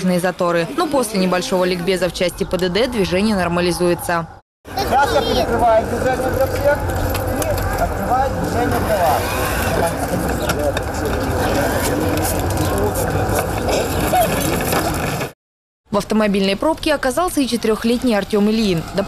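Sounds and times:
children's voices chattering: 4.7s - 6.1s, 9.2s - 15.2s.

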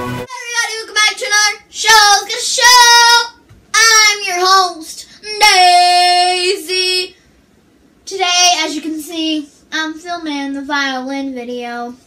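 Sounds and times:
girl singing unaccompanied: 0.2s - 7.2s, 8.0s - 12.0s.

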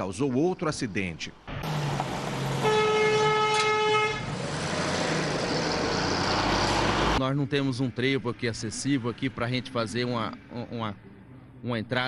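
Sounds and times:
truck engine and tyres passing: 1.4s - 11.6s
vehicle horn blast: 2.6s - 4.4s.

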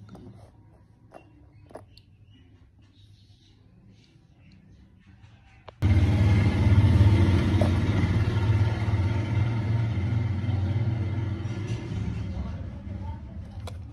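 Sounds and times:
low engine rumble: 5.7s - 13.9s.

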